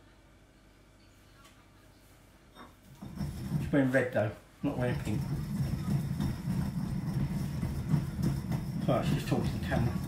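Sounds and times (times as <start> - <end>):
pestle grinding spices in mortar: 2.8 - 10.0.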